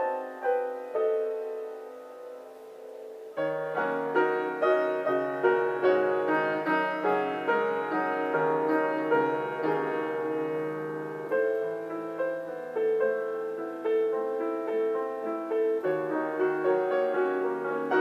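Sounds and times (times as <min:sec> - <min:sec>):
solo piano improvisation: 0:00.0 - 0:18.0.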